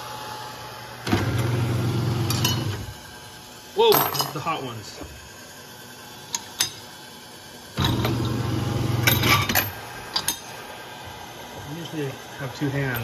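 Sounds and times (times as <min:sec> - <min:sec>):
electric motor humming: 0:00.0 - 0:03.3, 0:07.8 - 0:09.2.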